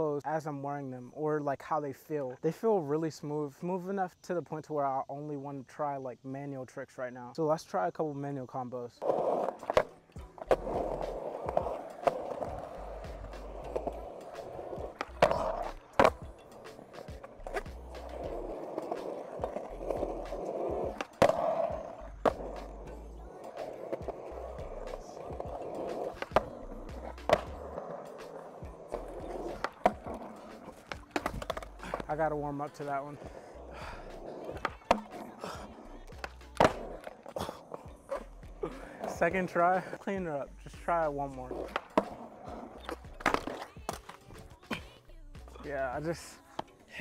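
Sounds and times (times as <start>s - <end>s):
skateboard wheels rolling on concrete: 7.6s - 47.0s
skateboard clacks: 9.0s - 39.4s, 41.0s - 44.8s.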